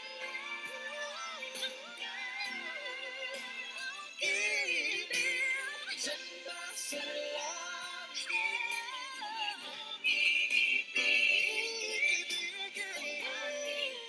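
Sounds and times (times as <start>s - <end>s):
man singing pop ballad: 0.0s - 14.0s.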